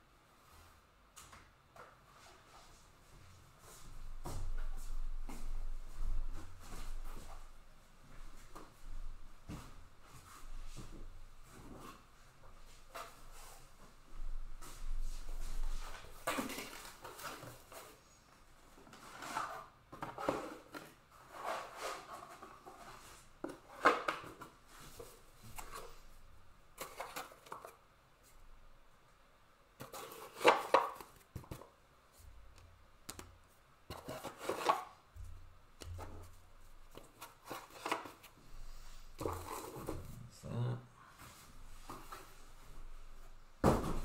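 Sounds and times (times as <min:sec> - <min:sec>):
low voice: 0:40.2 - 0:41.1
cardboard box knocks and rustles: 0:43.6 - 0:44.0.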